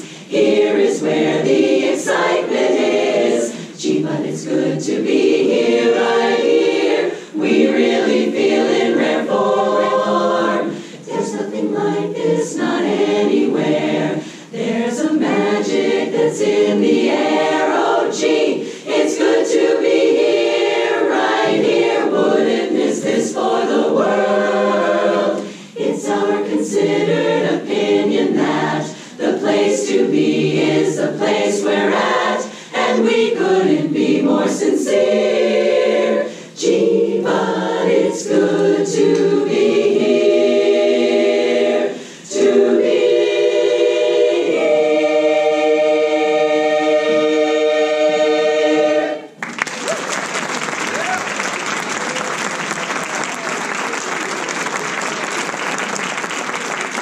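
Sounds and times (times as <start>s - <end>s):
women's chorus singing: 0.0s - 49.4s.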